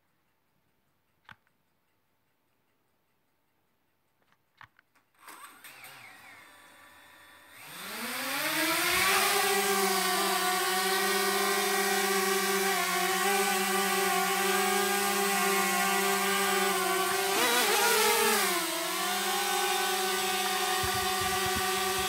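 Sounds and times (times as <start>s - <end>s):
drone propellers buzzing: 7.6s - 22.0s.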